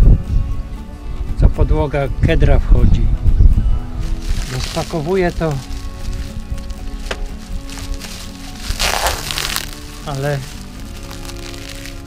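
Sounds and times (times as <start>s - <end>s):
background music: 0.0s - 12.0s
plastic wrap crinkling: 4.1s - 12.0s.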